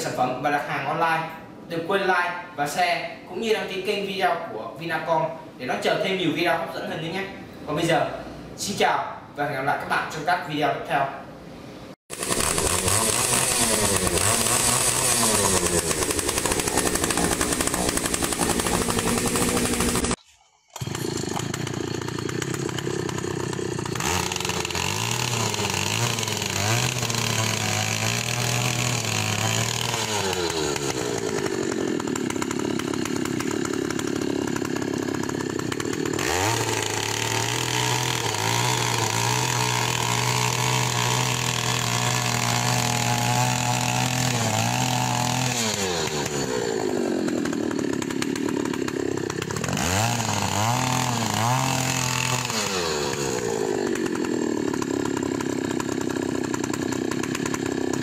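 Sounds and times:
earth auger engine boring into soil: 12.1s - 58.0s.

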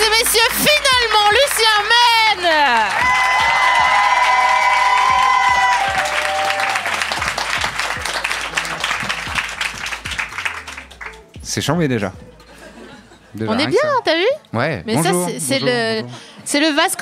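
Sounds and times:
audience applauding: 0.0s - 11.4s
theme music: 0.0s - 14.2s.

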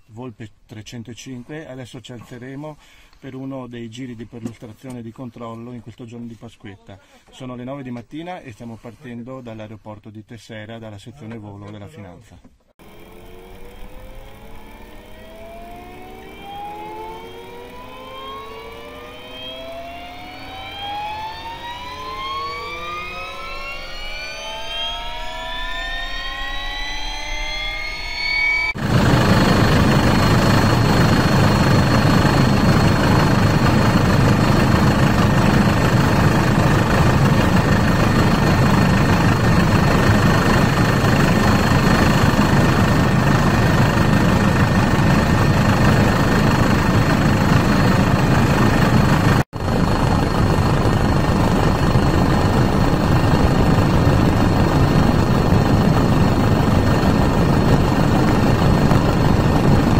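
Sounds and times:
helicopter engine whines rising: 12.8s - 59.9s
helicopter in flight rush: 12.8s - 59.9s.

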